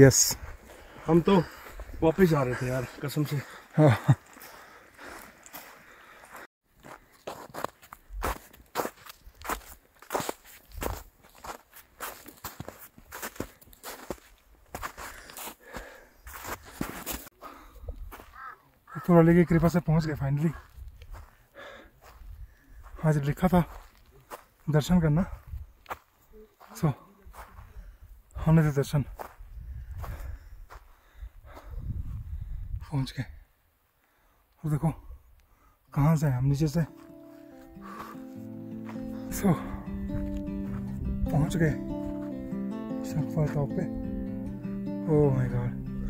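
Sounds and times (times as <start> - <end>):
footsteps in snow: 0.4 - 17.4, 36.7 - 42.8
wind rumble on microphone: 29.4 - 30.7, 31.4 - 32.9.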